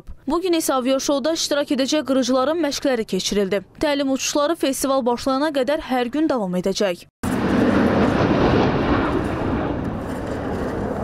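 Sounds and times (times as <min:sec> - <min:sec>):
jet engine rumble: 0:07.2 - 0:11.0.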